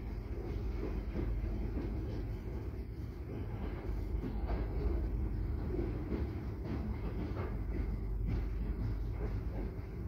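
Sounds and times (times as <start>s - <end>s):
clacks at rail joints: 0.0s - 10.0s
freight train wheels rumbling on rail: 0.0s - 10.0s.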